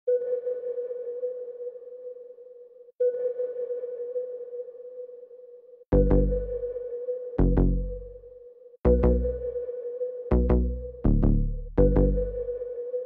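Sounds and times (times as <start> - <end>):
deep bass: 5.9 - 6.8, 7.4 - 8.2, 8.9 - 9.6, 10.3 - 12.6.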